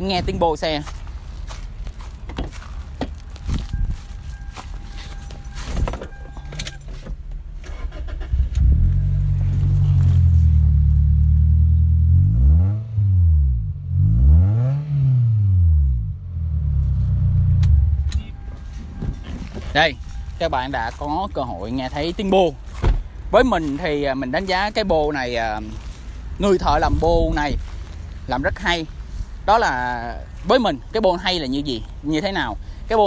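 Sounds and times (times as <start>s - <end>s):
car engine starting and revving: 7.2s - 18.3s.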